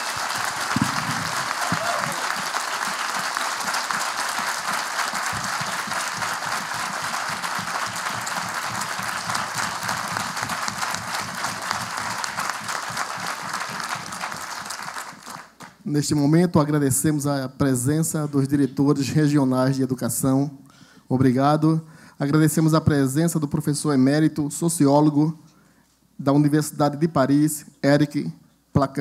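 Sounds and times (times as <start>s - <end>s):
audience applauding: 0.0s - 15.8s.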